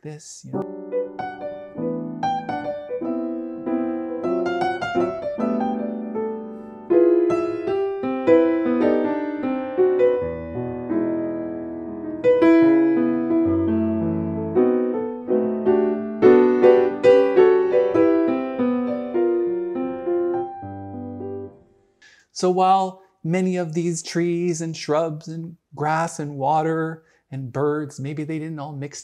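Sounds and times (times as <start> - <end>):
jazz piano solo: 0.5 - 21.6.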